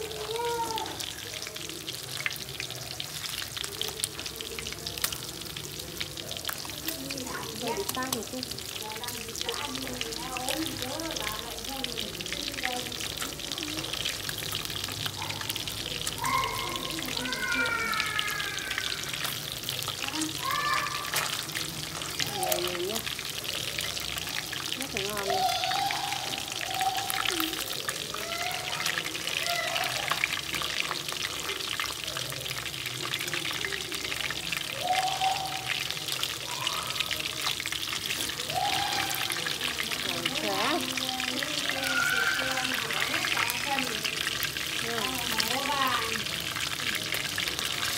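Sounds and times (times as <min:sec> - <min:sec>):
fish sizzling in hot oil: 0:00.0 - 0:47.9.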